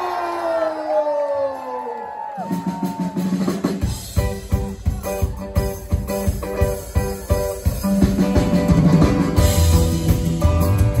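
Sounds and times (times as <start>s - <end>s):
drums and bass: 2.4s - 11.0s
fast choppy guitar rhythm: 3.6s - 11.0s.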